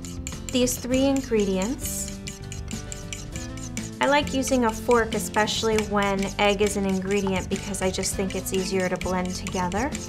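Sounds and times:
fork whisking in ceramic bowl: 0.0 - 10.0.

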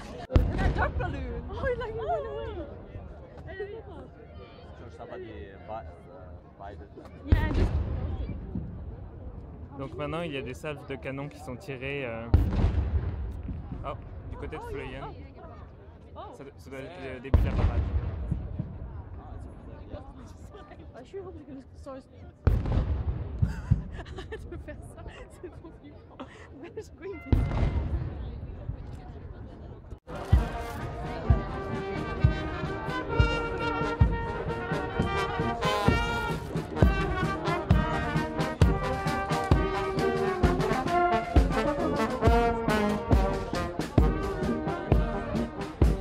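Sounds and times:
cannon boom with echo: 0.2 - 1.4, 7.3 - 8.8, 12.3 - 14.2, 17.3 - 18.9, 22.5 - 23.9, 27.3 - 28.4
bass drum beat: 0.3 - 1.5, 30.1 - 46.0
brass band playing a march: 30.1 - 46.0.

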